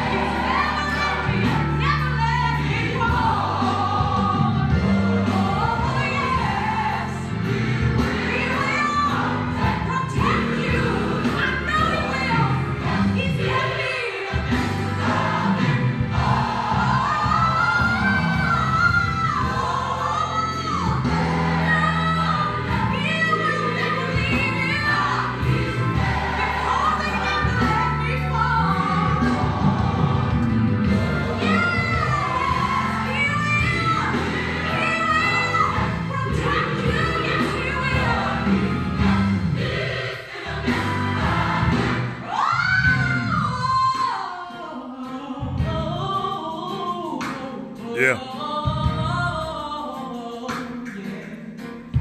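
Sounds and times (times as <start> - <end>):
gospel singing: 0.0 - 52.0.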